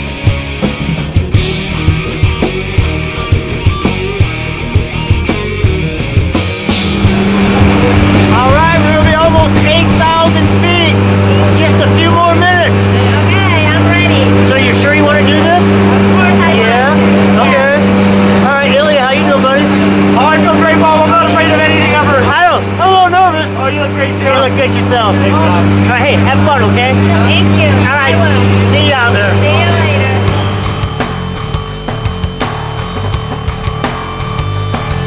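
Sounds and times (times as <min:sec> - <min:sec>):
aircraft engines droning: 0:01.0 - 0:35.0.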